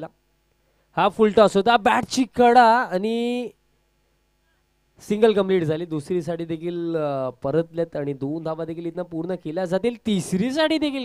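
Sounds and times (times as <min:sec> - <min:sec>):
commentator talking: 0:05.0 - 0:11.0.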